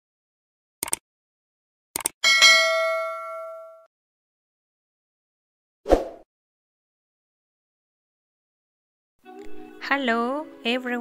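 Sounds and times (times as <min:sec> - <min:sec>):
bright bell ding: 0:02.2 - 0:03.9.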